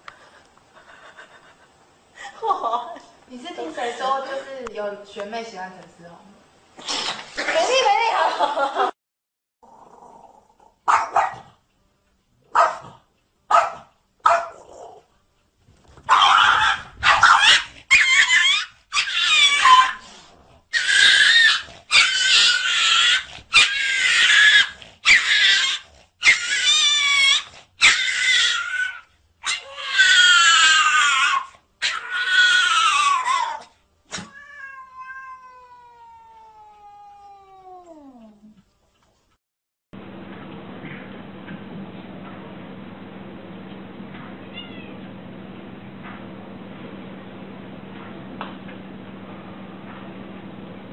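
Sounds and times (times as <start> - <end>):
cat yowling: 16.1 - 20.0, 20.7 - 38.4, 44.5 - 45.0.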